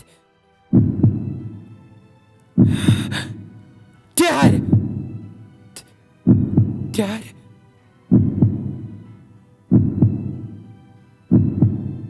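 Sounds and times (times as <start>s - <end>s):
heartbeat double thump: 0.7s - 1.6s, 2.6s - 3.2s, 4.5s - 5.1s, 6.3s - 7.0s, 8.1s - 8.9s, 9.7s - 10.5s, 11.3s - 12.0s
faint steady drone: 0.8s - 12.0s.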